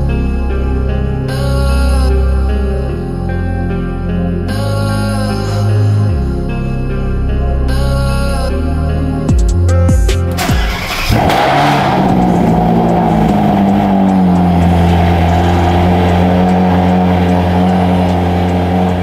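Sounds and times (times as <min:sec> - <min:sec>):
car engine starting: 0:00.0 - 0:19.0
car engine fast idle: 0:10.4 - 0:19.0.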